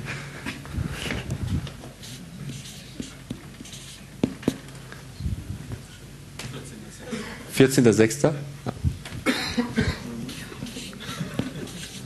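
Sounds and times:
person coughing: 9.2 - 11.6.

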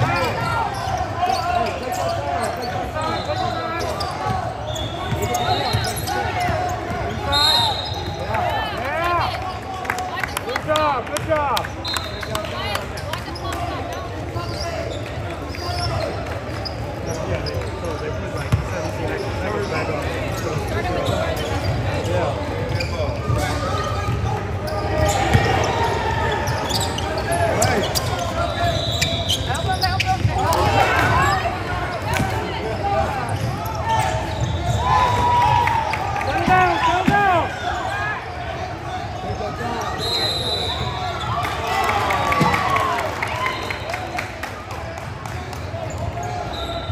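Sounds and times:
sneaker squeaks on court: 0.0 - 8.2, 14.3 - 35.2.

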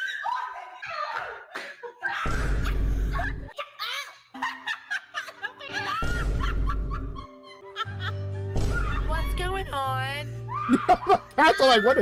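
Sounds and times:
women giggling: 0.0 - 8.4, 10.6 - 12.0.

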